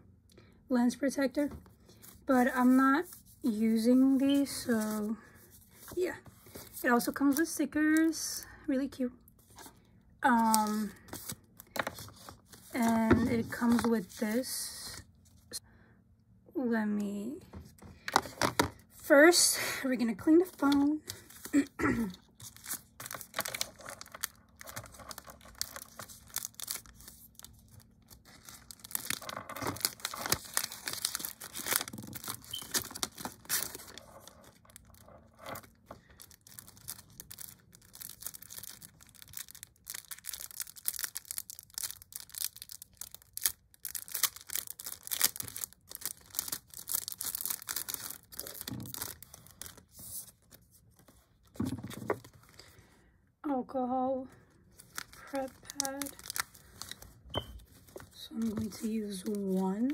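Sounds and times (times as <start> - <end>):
packaging crinkling and rustling: 10.5 - 14.4, 20.3 - 52.8, 54.7 - 59.9.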